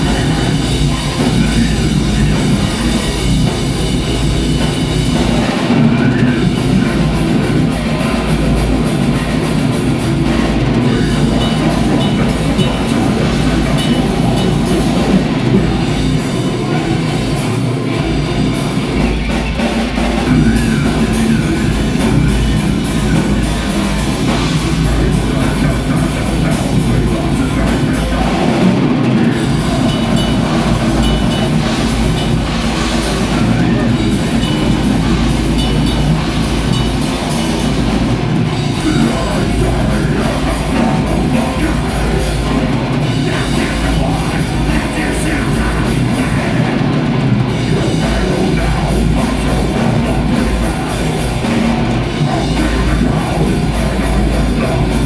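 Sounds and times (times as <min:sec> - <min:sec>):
distorted electric guitar: 0:00.0 - 0:55.0
fast drumming with cymbals: 0:00.0 - 0:55.0.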